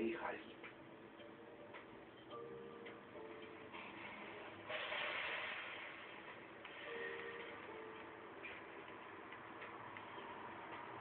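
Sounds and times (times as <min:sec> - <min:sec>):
low background hiss: 0:00.0 - 0:04.7.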